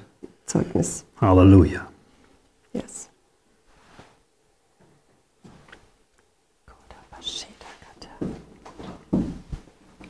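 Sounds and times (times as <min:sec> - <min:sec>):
person whispering: 0:02.7 - 0:03.2, 0:06.7 - 0:08.4.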